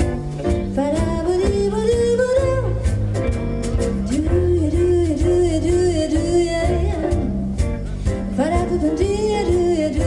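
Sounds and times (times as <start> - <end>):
swing jazz band playing: 0.0 - 10.0
walking bass line: 0.0 - 10.0.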